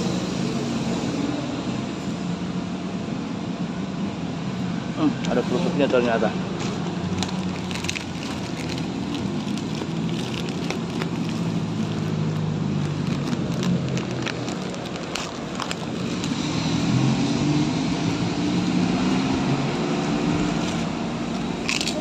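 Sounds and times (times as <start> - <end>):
road traffic hum: 0.0 - 22.0
plastic bag crinkling: 6.5 - 16.6, 21.5 - 22.0.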